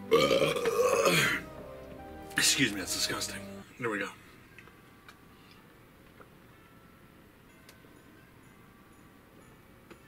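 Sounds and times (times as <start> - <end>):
man burping: 0.1 - 1.5.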